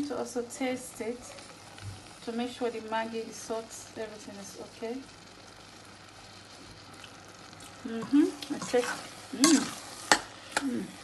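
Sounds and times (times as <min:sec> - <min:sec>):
pie filling sizzling in a pot: 0:00.0 - 0:11.0.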